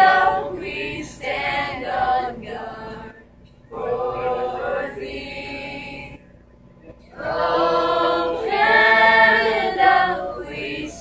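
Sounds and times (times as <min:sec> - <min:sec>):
group of voices singing: 0:00.0 - 0:06.2, 0:07.1 - 0:11.0.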